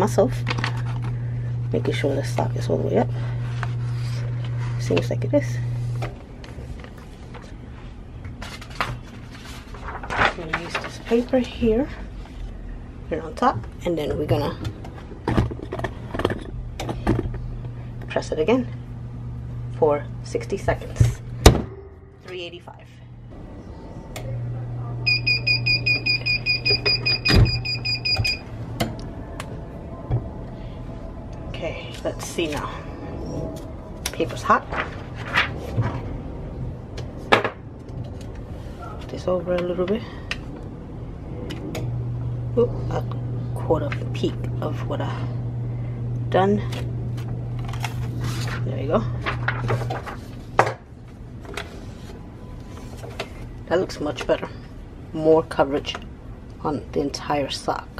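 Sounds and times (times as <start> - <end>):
low steady hum: 0.0 - 57.9
timer alarm beeping rapidly: 25.1 - 28.5.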